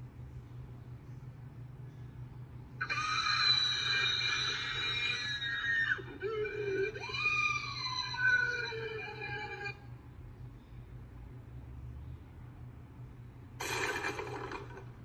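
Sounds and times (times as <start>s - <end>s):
cartoon character screaming: 2.8s - 9.8s.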